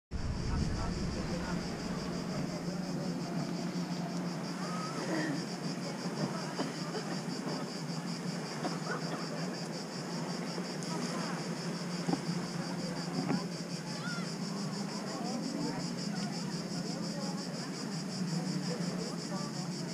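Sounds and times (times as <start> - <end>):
low steady hum: 0.1 - 16.6
faint voices of people: 0.2 - 19.9
cicadas buzzing: 0.6 - 19.9.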